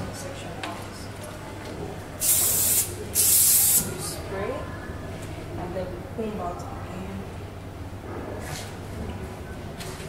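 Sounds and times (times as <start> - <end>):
hairspray blasts: 2.2 - 3.9.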